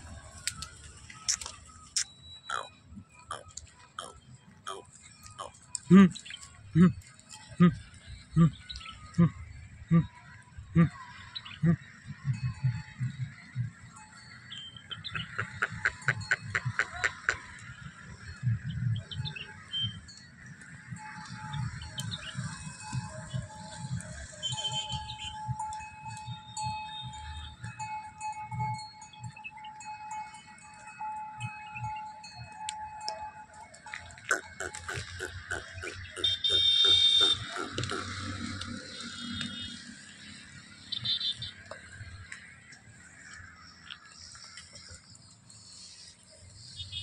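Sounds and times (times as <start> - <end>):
faint ringing tones: 0.0 - 47.0
low thumps of buffalo hooves: 3.0 - 45.6.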